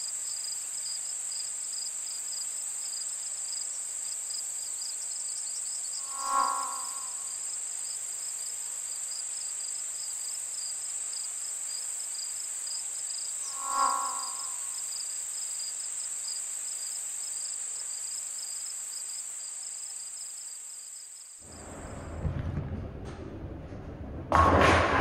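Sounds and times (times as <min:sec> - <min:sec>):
high-pitched cricket chirring: 0:02.9 - 0:21.3.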